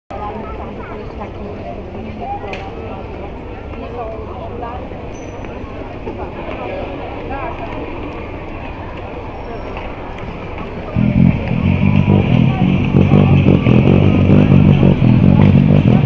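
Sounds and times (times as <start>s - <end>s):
chatter of many people: 0.1s - 16.0s
car driving slowly past: 10.0s - 16.0s
electric bass playing low notes: 10.9s - 16.0s.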